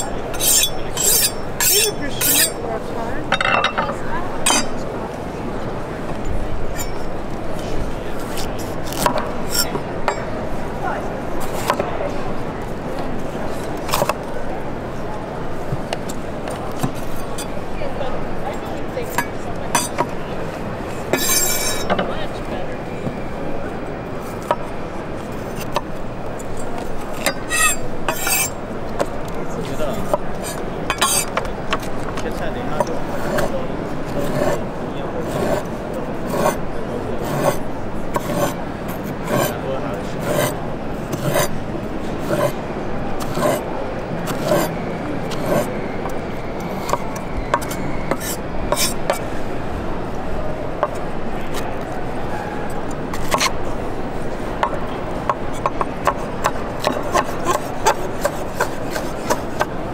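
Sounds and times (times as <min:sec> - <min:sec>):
knife on honing steel: 0:00.0 - 0:02.6, 0:03.3 - 0:04.8, 0:06.7 - 0:07.2, 0:08.4 - 0:10.3, 0:19.0 - 0:20.2, 0:21.1 - 0:22.0, 0:25.4 - 0:28.6, 0:30.0 - 0:31.9, 0:34.2 - 0:34.6, 0:36.3 - 0:36.6, 0:37.2 - 0:39.6, 0:40.2 - 0:41.6, 0:42.2 - 0:42.6, 0:43.2 - 0:43.7, 0:44.3 - 0:49.2, 0:53.2 - 0:53.6, 0:54.6 - 0:59.7
murmur of crowd chatter: 0:00.0 - 0:59.9
knife slicing on wooden board: 0:47.6 - 0:49.2.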